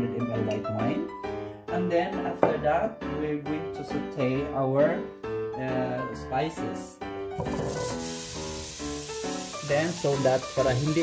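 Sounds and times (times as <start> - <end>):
background music: 0.0 - 11.0
butter sizzling in a hot pot: 7.4 - 11.0.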